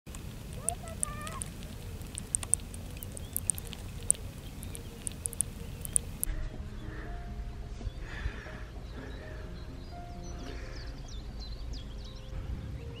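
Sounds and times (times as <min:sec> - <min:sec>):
crab clicking and crackling: 0:00.0 - 0:06.3
wavering pitched call: 0:00.5 - 0:06.3.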